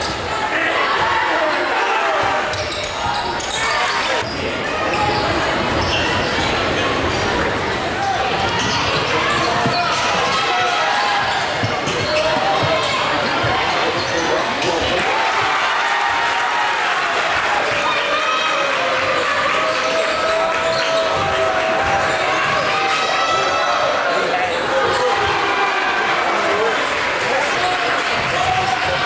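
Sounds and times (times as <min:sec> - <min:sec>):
crowd chatter: 0:00.0 - 0:29.0.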